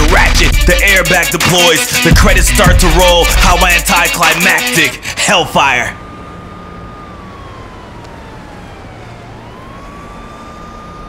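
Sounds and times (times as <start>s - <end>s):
high steady tone sliding in pitch: 3.0s - 11.0s.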